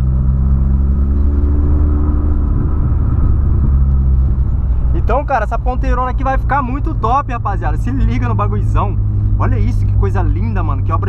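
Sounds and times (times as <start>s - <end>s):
car engine droning: 0.0s - 11.0s.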